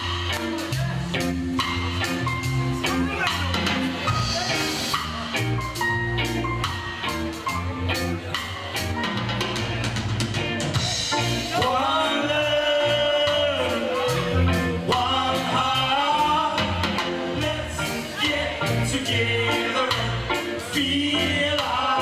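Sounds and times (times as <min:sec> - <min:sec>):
live reggae band: 0:00.0 - 0:22.0
steady drum beat: 0:00.0 - 0:22.0.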